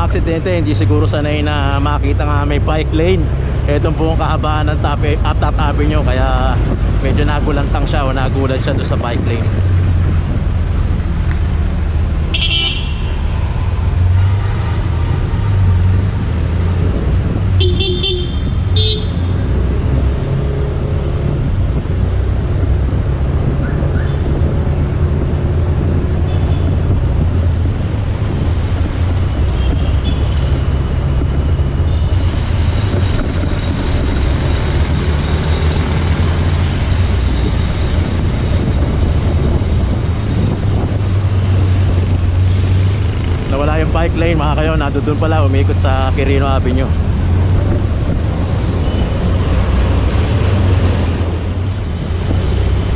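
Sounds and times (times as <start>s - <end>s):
traffic low rumble: 0.0s - 52.9s
vehicle horn toots: 12.3s - 13.2s, 17.6s - 19.3s.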